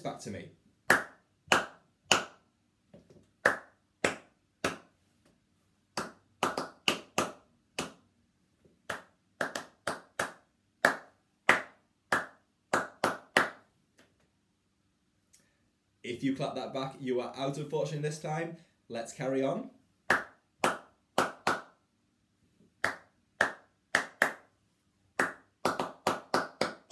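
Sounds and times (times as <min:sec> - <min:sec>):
person clapping rhythm patterns: 0:00.8 - 0:02.4, 0:03.4 - 0:04.9, 0:05.9 - 0:08.1, 0:08.8 - 0:14.1, 0:20.0 - 0:21.8, 0:22.8 - 0:24.5, 0:25.2 - 0:26.9.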